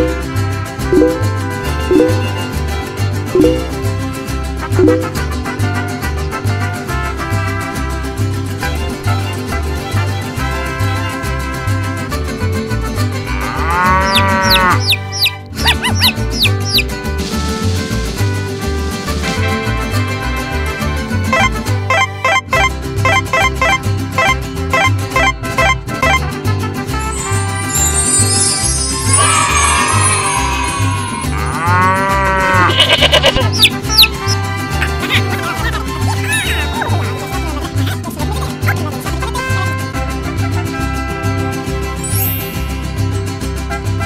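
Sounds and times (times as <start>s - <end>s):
cow mooing: 13.4s - 15.0s, 31.3s - 33.5s
quick high chirps: 14.1s - 16.9s, 27.2s - 31.4s, 33.2s - 35.2s
falling whistle sounds: 27.6s - 31.4s.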